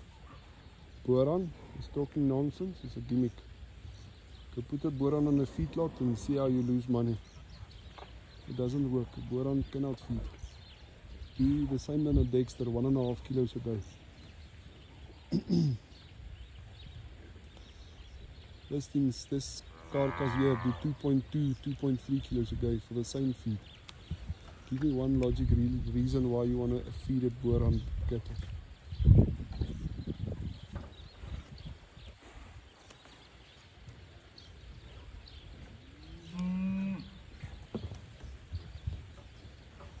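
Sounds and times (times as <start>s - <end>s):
cow mooing: 19.8s - 20.9s.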